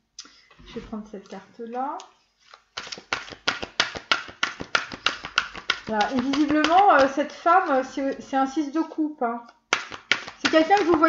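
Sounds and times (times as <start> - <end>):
cards clicking: 2.5 - 7.2.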